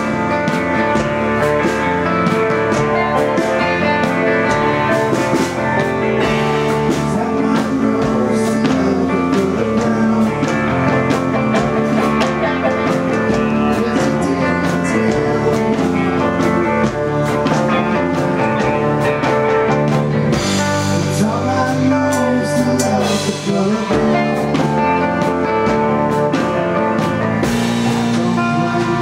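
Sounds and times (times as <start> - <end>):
drums with steady beat: 0.0 - 29.0
electric bass: 0.0 - 29.0
electric guitar: 0.0 - 29.0.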